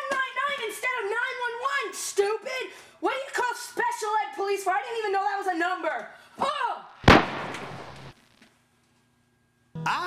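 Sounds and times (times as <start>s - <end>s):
loud sharp bang: 7.0s - 8.1s.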